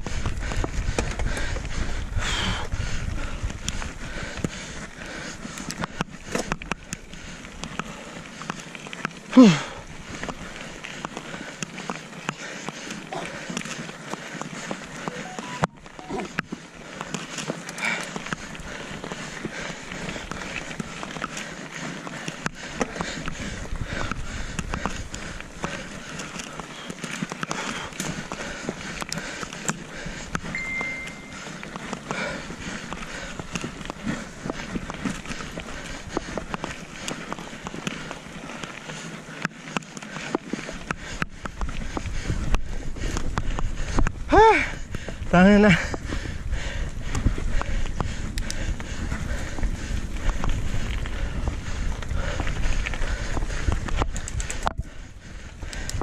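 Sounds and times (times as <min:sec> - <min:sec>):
wind rumbling on microphone: 0:00.0 - 0:08.1, 0:18.1 - 0:38.7, 0:40.5 - 0:56.0
bike rattles and clicks: 0:00.0 - 0:56.0
bike tyres on gravel: 0:00.0 - 0:56.0.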